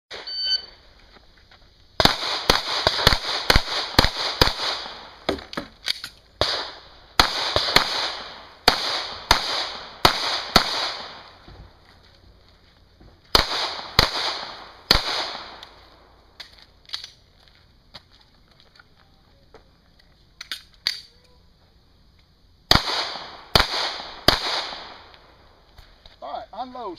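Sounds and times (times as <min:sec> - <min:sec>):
shot timer beep: 0:00.2 - 0:00.7
pistol shots: 0:02.0 - 0:05.1, 0:06.4 - 0:11.3, 0:13.3 - 0:15.7, 0:22.7 - 0:25.1.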